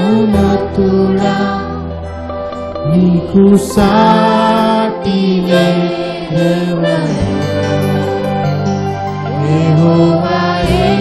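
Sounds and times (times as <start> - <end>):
electric guitar: 0.0 - 11.0
group of voices singing: 0.0 - 11.0
keyboard: 0.0 - 11.0.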